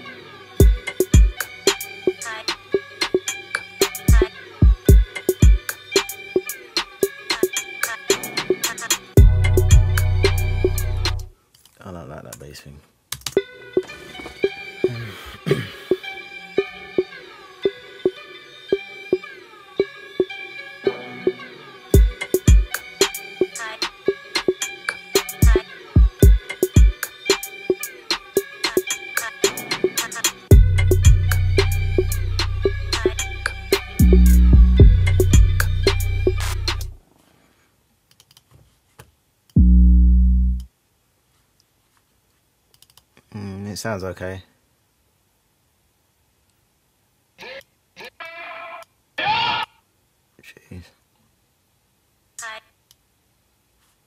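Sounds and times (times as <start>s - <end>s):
hip-hop beat with deep bass: 0.6s - 11.3s, 22.0s - 37.0s, 39.6s - 40.7s
deep bass note: 9.2s - 11.3s, 39.6s - 40.7s
melodic sampled loop sliding down: 9.2s - 11.3s, 39.6s - 40.7s
mouse clicks: 42.7s - 43.1s.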